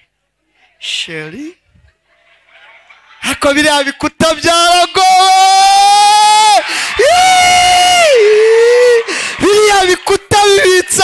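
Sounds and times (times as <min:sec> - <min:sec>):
man shouting into microphone: 0:03.4 - 0:11.0.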